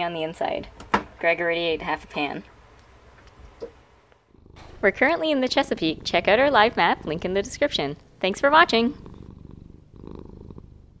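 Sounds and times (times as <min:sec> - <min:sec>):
cat purring: 0:03.6 - 0:11.0.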